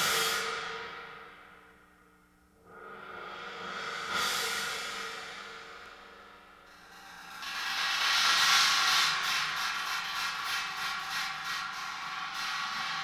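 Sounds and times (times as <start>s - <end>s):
light metallic cymbal strokes: 0.0s - 13.0s.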